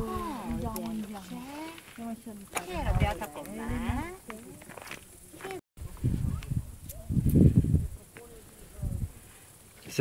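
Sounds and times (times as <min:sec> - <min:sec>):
people talking: 0:00.0 - 0:07.1, 0:07.9 - 0:09.1.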